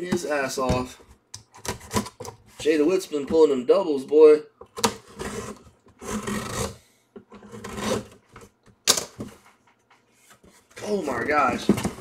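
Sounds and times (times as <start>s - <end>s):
cardboard scraping and rubbing: 5.0s - 6.8s, 7.4s - 8.4s.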